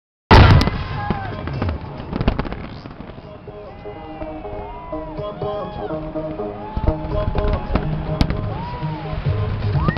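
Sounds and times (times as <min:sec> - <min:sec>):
fireworks bangs and crackling: 0:00.3 - 0:04.4, 0:05.8 - 0:09.9.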